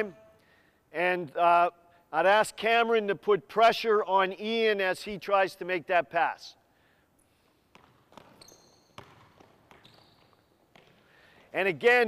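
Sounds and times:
sneaker squeaks: 7.4s - 11.6s
basketball bouncing on court: 7.6s - 11.6s.

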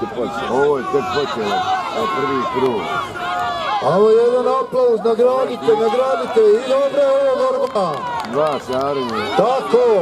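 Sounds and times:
people shouting: 0.0s - 7.4s, 8.9s - 10.0s.

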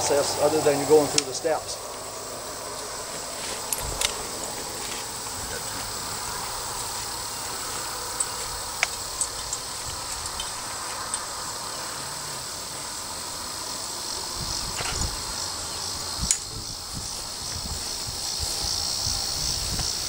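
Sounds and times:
insects droning: 0.0s - 20.0s.

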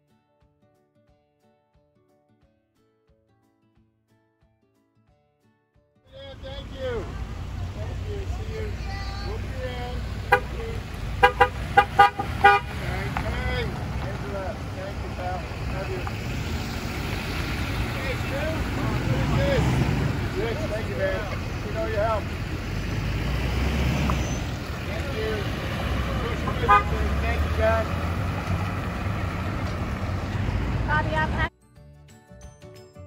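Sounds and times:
music: 0.0s - 7.0s, 31.0s - 33.0s
people calling out and cheering: 6.1s - 29.0s
vehicles rolling past: 6.1s - 31.5s
car horn honks: 9.0s - 14.3s, 24.0s - 27.8s.

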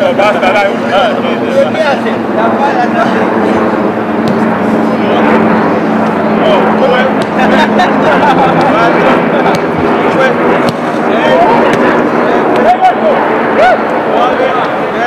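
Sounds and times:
players calling and chattering: 0.0s - 15.0s
steady low hum: 0.0s - 15.0s
ball being kicked thuds: 4.2s - 4.4s, 10.6s - 10.9s.

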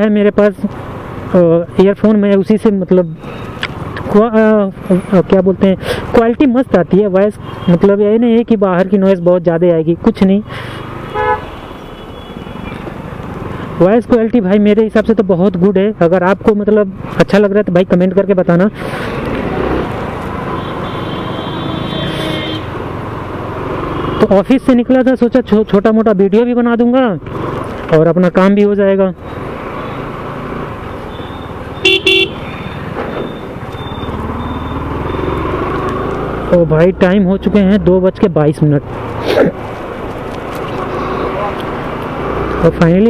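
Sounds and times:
motorcycle engine and road noise: 0.0s - 43.0s
vehicle horn double toot: 11.1s - 12.7s, 20.6s - 22.7s, 31.1s - 32.8s
short vehicle horn toot: 31.2s - 32.4s.

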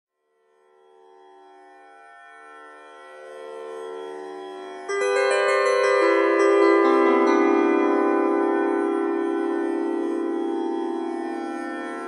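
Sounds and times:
tanpura drone: 0.2s - 12.0s
bright ringing notes: 4.9s - 12.0s.

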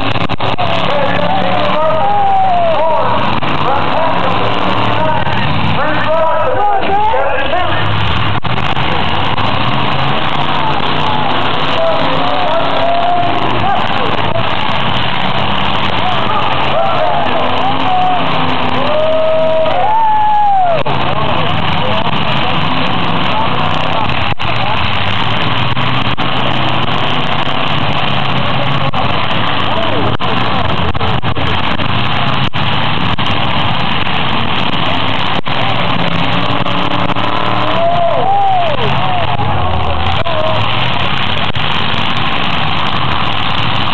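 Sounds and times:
car engines revving: 0.0s - 43.9s
crowd shouting and cheering: 0.0s - 43.9s.

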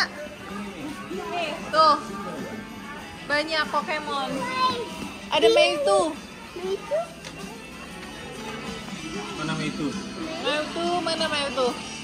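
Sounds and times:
low shop background: 0.0s - 12.0s.

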